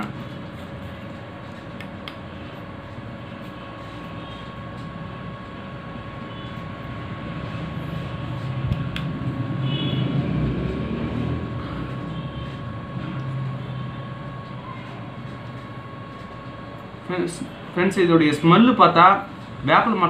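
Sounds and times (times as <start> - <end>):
steady background hum: 0.0 - 20.0.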